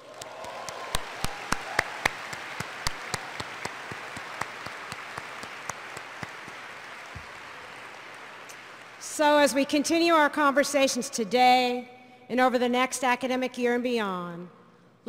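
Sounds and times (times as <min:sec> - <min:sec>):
close single claps: 0:00.0 - 0:09.0
audience applause: 0:00.0 - 0:09.7.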